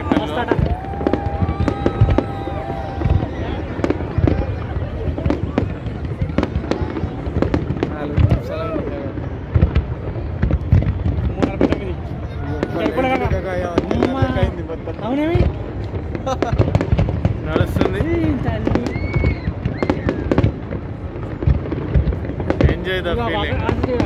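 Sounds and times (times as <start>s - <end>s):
fireworks bursting: 0.0s - 24.0s
people's voices: 0.0s - 24.0s.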